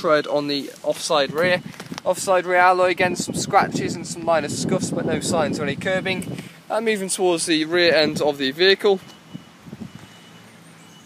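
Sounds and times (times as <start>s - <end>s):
footsteps on tarmac: 0.0s - 3.0s, 8.0s - 10.3s
steady outdoor hiss: 0.0s - 11.0s.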